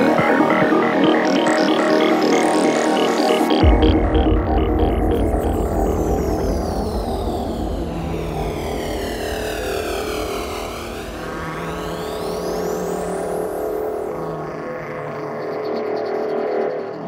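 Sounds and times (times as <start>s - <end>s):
bass: 0.0s - 14.2s
falling and rising pitch sweeps: 0.0s - 14.5s
held synthesizer chords: 0.0s - 15.4s.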